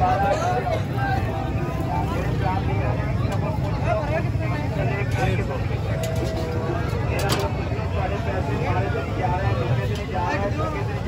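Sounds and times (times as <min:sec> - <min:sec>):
low rumble of traffic: 0:00.0 - 0:11.0
several voices talking: 0:00.0 - 0:11.0.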